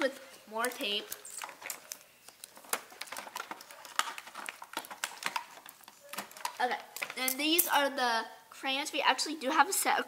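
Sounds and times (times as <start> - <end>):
plastic packaging crinkling: 0.5 - 7.6.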